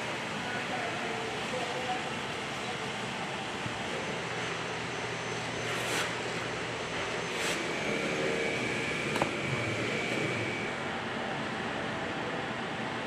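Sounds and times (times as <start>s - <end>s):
machinery and ventilation hiss: 0.0s - 13.0s.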